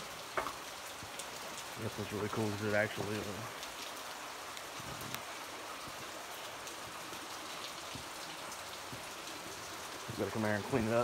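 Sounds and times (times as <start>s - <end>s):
water dripping onto rock: 0.0s - 11.0s.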